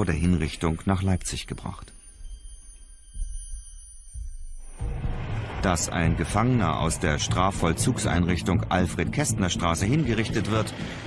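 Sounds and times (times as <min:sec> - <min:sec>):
faint steady high tones: 0:00.0 - 0:11.0
soft low pulse: 0:00.0 - 0:11.0
deep rumbling drone: 0:01.9 - 0:11.0.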